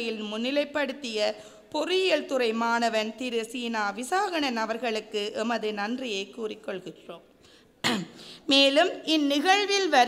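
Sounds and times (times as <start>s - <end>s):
woman clearing her throat: 7.8s - 8.3s.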